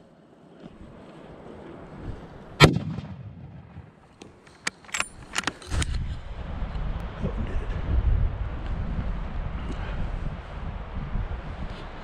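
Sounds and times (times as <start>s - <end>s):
rifle shot: 2.6s - 4.0s
wind on microphone: 5.6s - 12.0s.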